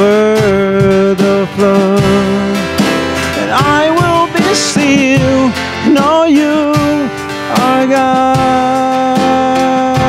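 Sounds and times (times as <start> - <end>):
acoustic guitar: 0.0 - 10.0
man singing: 0.0 - 10.0.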